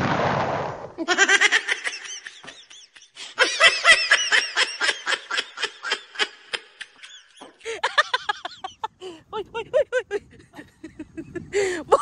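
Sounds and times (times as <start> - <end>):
person laughing hard: 1.0 - 12.0.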